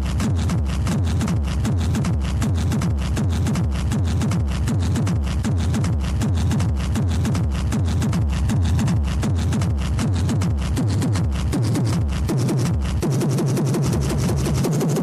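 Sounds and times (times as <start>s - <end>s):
hard techno music: 0.0s - 15.0s.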